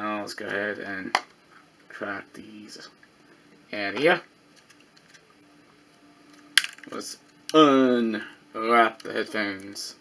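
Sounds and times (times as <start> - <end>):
cable crackling: 4.0 - 5.4.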